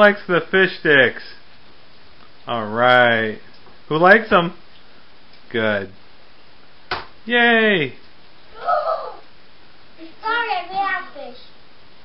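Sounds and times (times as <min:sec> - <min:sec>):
child's hoarse shout: 0:08.5 - 0:09.3.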